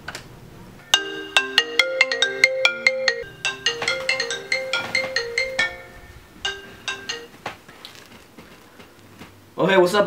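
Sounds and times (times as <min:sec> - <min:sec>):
phone ringtone melody: 0:00.8 - 0:07.4.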